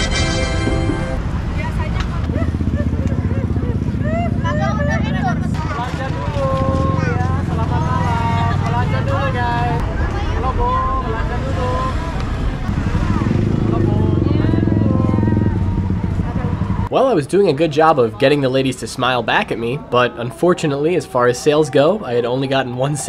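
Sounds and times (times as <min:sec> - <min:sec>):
motorcycle and car engines rumbling: 0:00.0 - 0:18.7
people's voices: 0:00.0 - 0:23.0.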